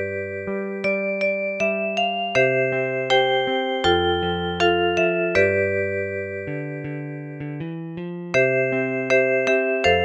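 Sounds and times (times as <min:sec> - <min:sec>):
synthesized keyboard chords and bass: 0:00.0 - 0:10.0.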